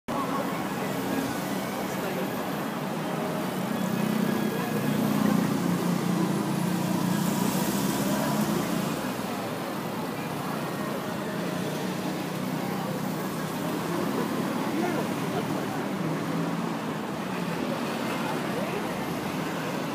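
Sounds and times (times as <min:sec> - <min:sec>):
traffic noise: 0:00.1 - 0:19.9.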